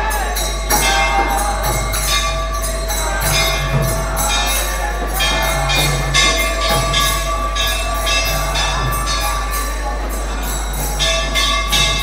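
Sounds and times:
hand cymbals striking: 0:00.0 - 0:12.0
harmonium drone: 0:00.0 - 0:12.0.

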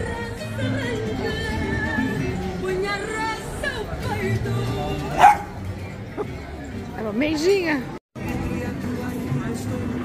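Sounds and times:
background music: 0:00.0 - 0:10.0
dog bark: 0:05.1 - 0:05.6.

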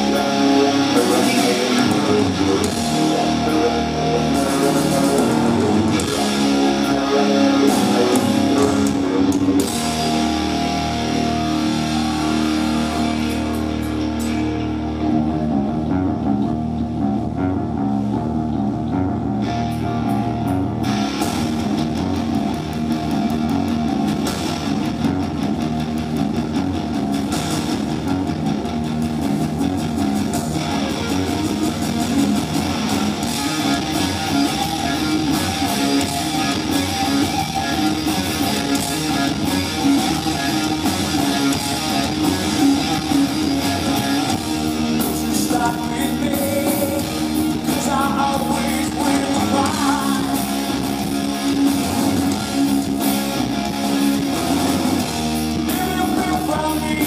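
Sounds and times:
hard rock band playing live: 0:00.0 - 0:57.0.

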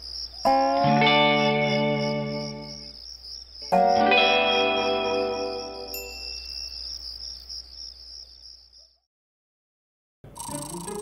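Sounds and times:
crickets chirping: 0:00.0 - 0:09.0, 0:10.3 - 0:11.0
music: 0:00.5 - 0:03.0, 0:03.6 - 0:06.4
high twinkling chime: 0:05.5 - 0:06.9.

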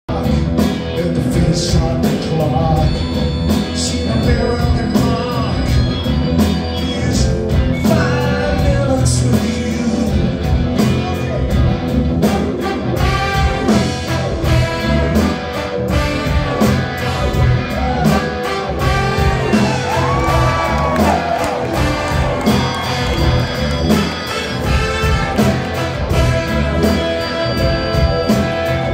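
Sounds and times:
live rock band with horns: 0:00.1 - 0:28.9.

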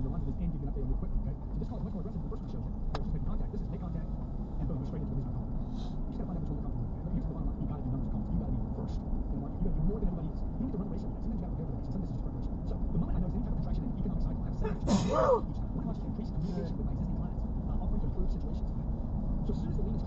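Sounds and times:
car road and engine rumble: 0:00.0 - 0:20.0
faint voice: 0:00.0 - 0:20.0.

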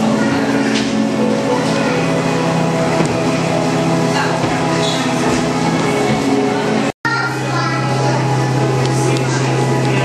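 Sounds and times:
hum and hiss of indoor hall: 0:00.0 - 0:10.0.

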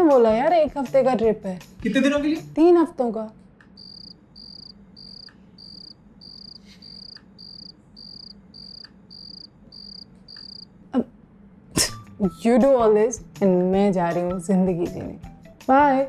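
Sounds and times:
cricket chirping: 0:03.7 - 0:10.8.

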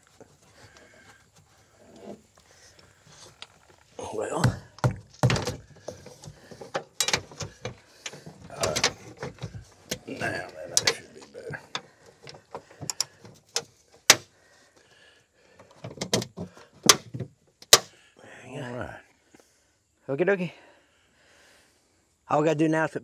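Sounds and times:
air-cleaner housing knocking and scraping: 0:04.4 - 0:14.3, 0:15.7 - 0:17.9.

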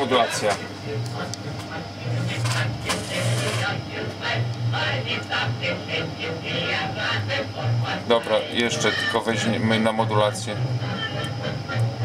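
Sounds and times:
music with voice through loudspeaker: 0:00.0 - 0:03.9, 0:04.8 - 0:12.0.

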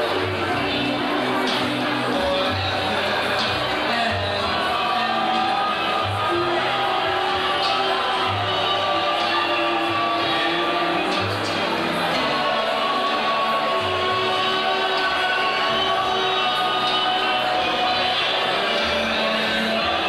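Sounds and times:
live band music: 0:00.0 - 0:20.0.

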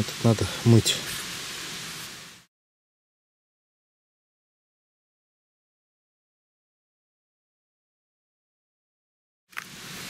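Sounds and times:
outdoor background hiss: 0:00.0 - 0:02.5, 0:09.5 - 0:10.0.

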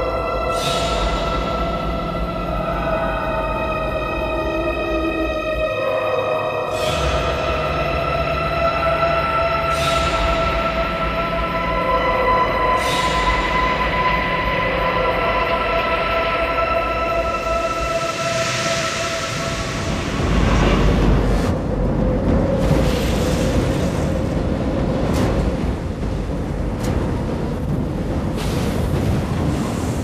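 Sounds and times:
dark film score of held tones: 0:00.0 - 0:30.0
stormy sea rushing: 0:00.0 - 0:30.0.

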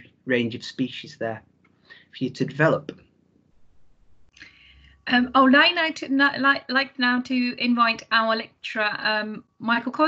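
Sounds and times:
person drawing breath: 0:01.8 - 0:02.2.

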